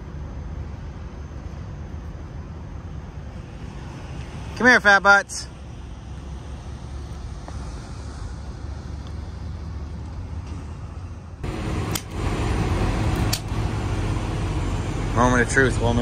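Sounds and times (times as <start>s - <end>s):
traffic rumble: 0.0s - 16.0s
truck engines idling: 0.0s - 16.0s.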